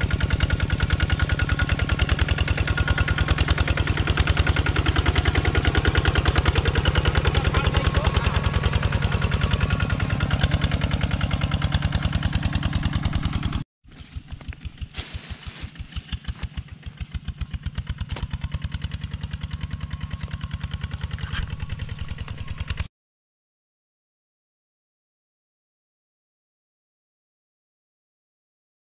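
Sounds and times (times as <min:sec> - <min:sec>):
single-cylinder engine chugging: 0:00.0 - 0:22.9.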